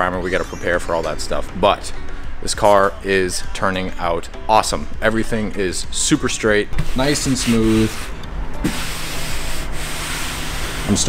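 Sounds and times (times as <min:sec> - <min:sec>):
hand rubbing car panel: 0:06.8 - 0:11.0.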